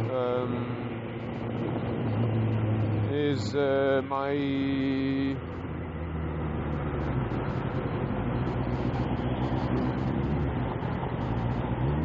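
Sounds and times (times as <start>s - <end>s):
road and traffic drone: 0.0s - 12.0s.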